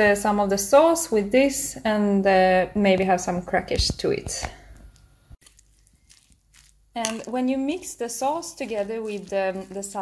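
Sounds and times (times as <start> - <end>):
salad crunching and squishing: 5.4 - 7.3, 8.6 - 10.0.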